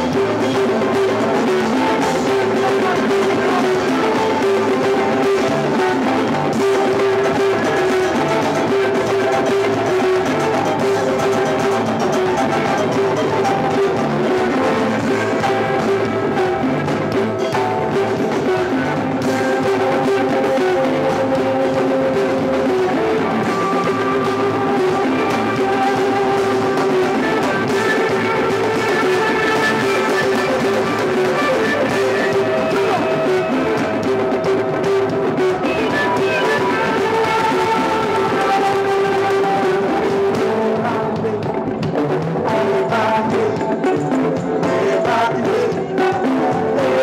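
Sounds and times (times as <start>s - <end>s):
drums and congas beat: 0.0s - 47.0s
held instrumental notes: 0.0s - 47.0s.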